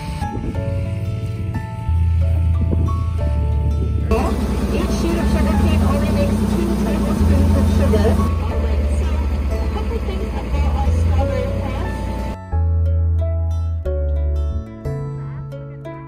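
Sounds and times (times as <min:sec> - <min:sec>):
tractor engine running: 0:00.0 - 0:12.4
soft background music: 0:00.0 - 0:16.0
indistinct voices: 0:04.1 - 0:12.4.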